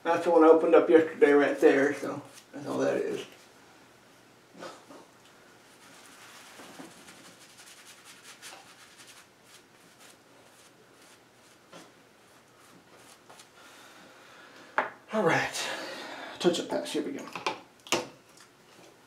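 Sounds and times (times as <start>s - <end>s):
razor scraping lathered face: 5.8s - 11.6s.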